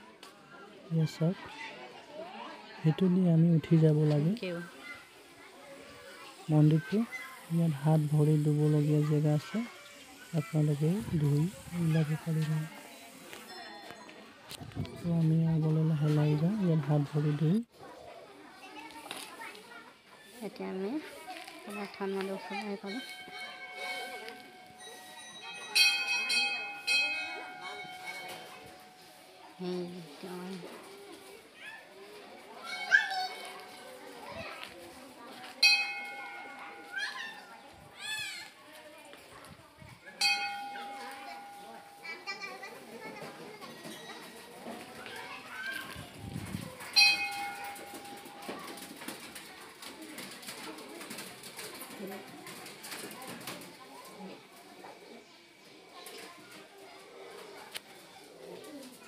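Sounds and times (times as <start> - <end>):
faint voices: 0.0 - 59.0.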